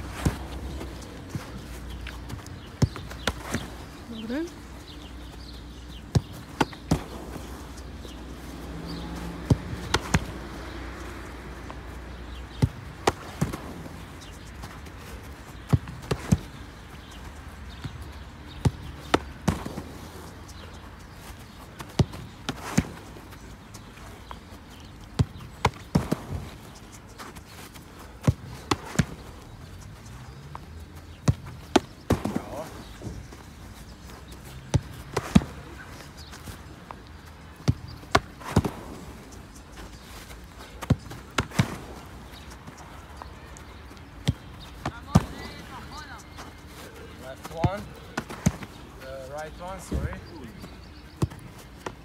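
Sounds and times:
football thuds: 0.0 - 4.0, 5.0 - 10.7, 11.6 - 20.3, 21.2 - 29.3, 30.5 - 40.0, 40.6 - 43.3, 44.0 - 52.0.

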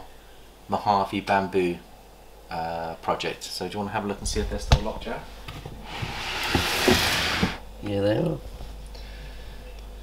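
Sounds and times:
plastic tub scraping out of rack: 5.8 - 7.6.

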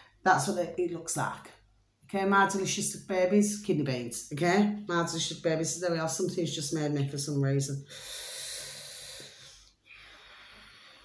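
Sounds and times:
long breath out: 7.9 - 11.0.

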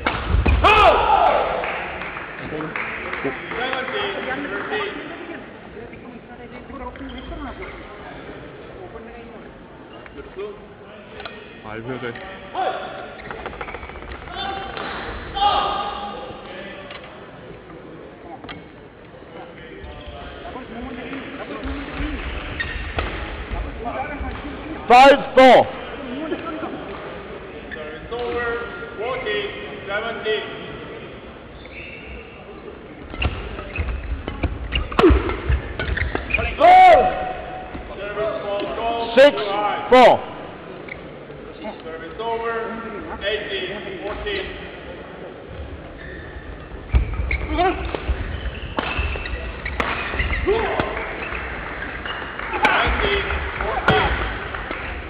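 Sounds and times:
players' voices: 14.2 - 45.9
sneakers squeaking on court: 21.2 - 24.6, 31.5 - 36.6, 45.5 - 53.2.

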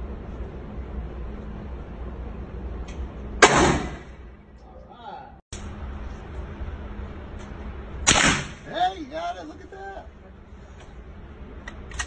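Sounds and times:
steady low hum: 0.0 - 12.0
gunshot with echo: 3.4 - 4.2, 8.1 - 8.7.

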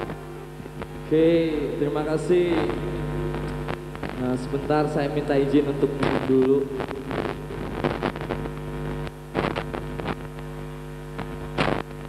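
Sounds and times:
mains hum through pa: 0.0 - 12.0.

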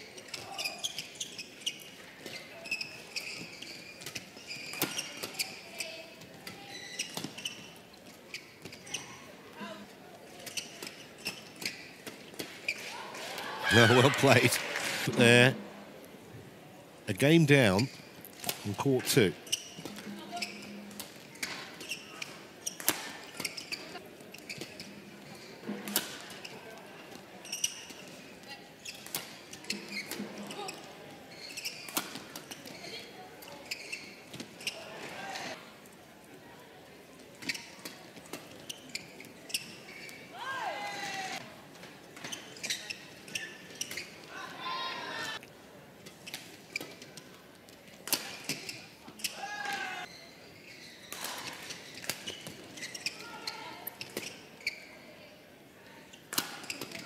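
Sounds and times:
shoes squealing on court: 0.2 - 5.9, 6.6 - 9.1, 29.6 - 34.8, 38.6 - 40.3, 42.2 - 44.2, 50.0 - 55.0
low crowd murmur: 2.0 - 17.1, 18.2 - 57.0.

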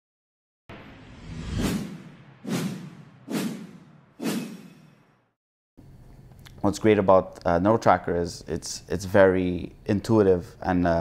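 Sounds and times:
whoosh sound effects: 0.7 - 5.0.

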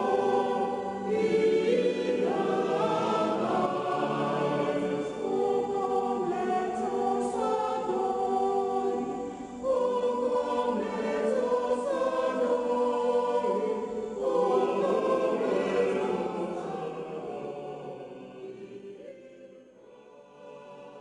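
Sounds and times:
church choir singing a hymn: 0.0 - 21.0.

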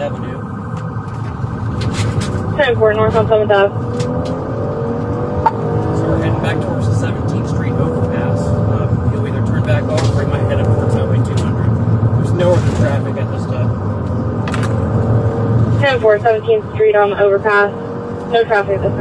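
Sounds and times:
car engine and road noise: 0.0 - 19.0.

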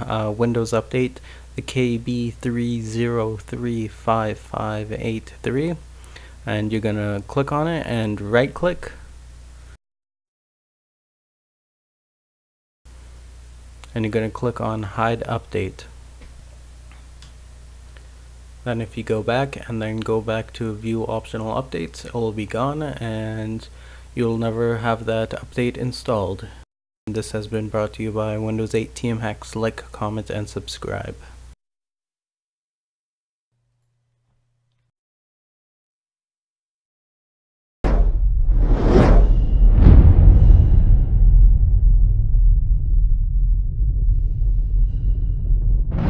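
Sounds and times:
low electrical hum: 0.0 - 9.8, 12.9 - 31.6, 33.6 - 34.9
deep rumble: 37.9 - 46.0
whoosh: 37.9 - 46.0.

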